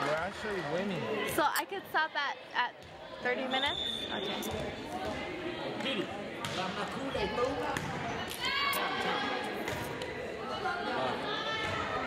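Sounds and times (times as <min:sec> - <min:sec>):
spectators chatting: 0:00.7 - 0:12.0.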